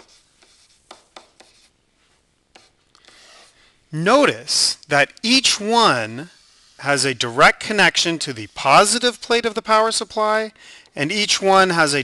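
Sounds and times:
stylus scratching on a tablet: 0.0s - 3.6s, 5.4s - 10.2s.

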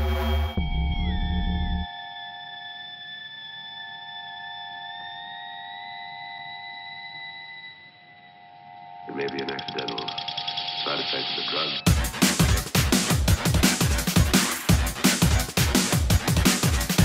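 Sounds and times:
bass and beat: 11.9s - 17.0s.

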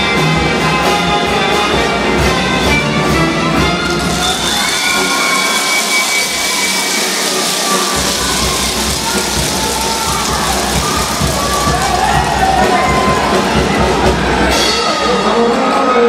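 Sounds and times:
brass band playing: 0.0s - 15.6s
crowd cheering: 3.5s - 16.0s.

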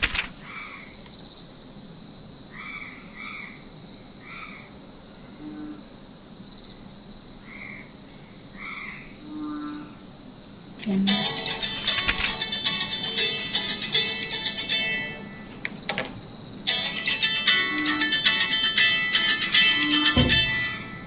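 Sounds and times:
crickets chirring: 0.0s - 21.0s
frog croaks: 5.3s - 5.9s, 7.4s - 10.0s.

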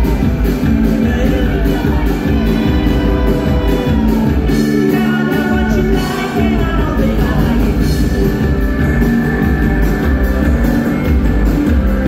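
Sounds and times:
man singing lead: 0.0s - 8.6s
live rock band playing: 0.0s - 12.0s.

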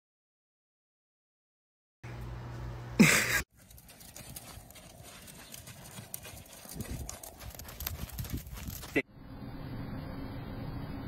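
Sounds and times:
pony hoofbeats on sand: 3.5s - 9.0s.

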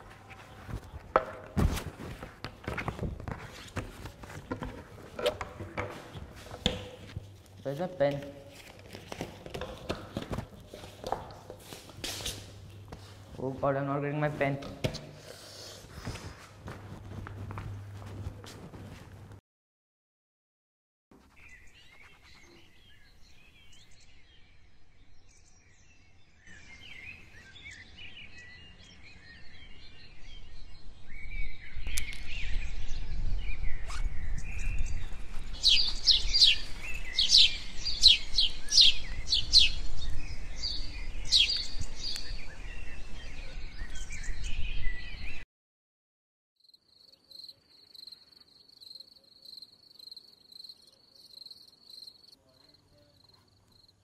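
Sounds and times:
birds chirping: 21.4s - 45.4s
crickets trilling: 46.6s - 52.4s.

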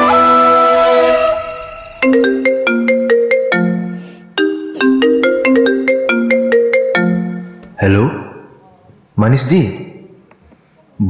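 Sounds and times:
marimba ringtone melody: 1.8s - 7.8s.

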